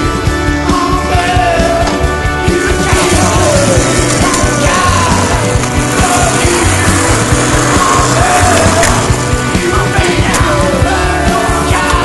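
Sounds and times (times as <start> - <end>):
loud rock music with singer: 0.0 - 12.0.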